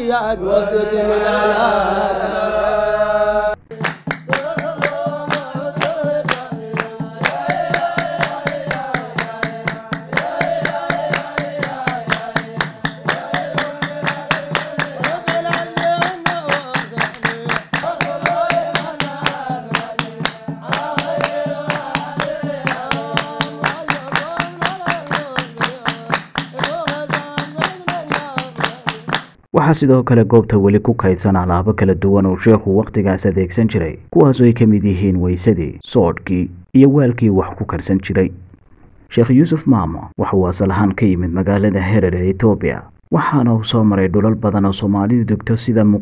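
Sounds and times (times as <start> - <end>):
group chanting a devotional song: 0.0 - 29.4
rhythmic hand-clapping: 3.7 - 29.5.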